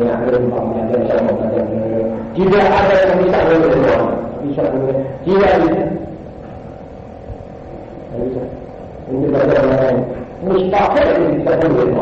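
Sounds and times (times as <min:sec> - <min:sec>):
man lecturing: 0:00.0 - 0:06.2, 0:08.1 - 0:12.0
steady low hum: 0:00.0 - 0:12.0.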